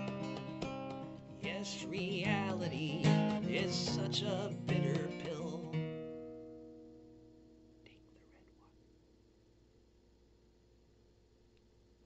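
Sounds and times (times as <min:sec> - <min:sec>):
acoustic guitar chord ringing: 0:00.0 - 0:07.8.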